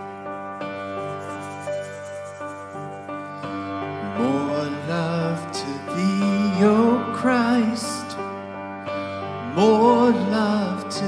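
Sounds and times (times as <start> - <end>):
slow keyboard music: 0.0 - 11.0.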